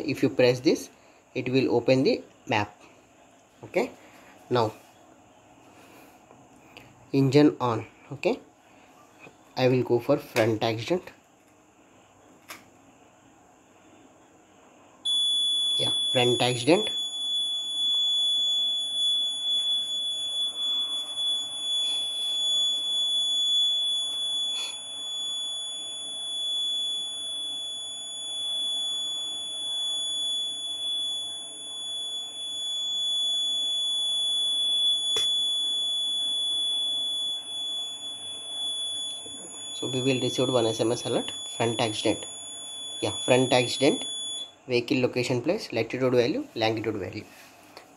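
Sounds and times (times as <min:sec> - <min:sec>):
small fan running faintly: 0:00.0 - 0:47.9
piezo buzzer alarm tone: 0:15.1 - 0:44.6.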